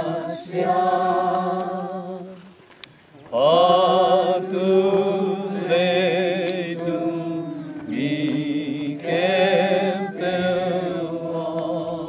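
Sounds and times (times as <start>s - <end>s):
group singing a slow hymn: 0.0s - 2.6s, 3.2s - 12.0s.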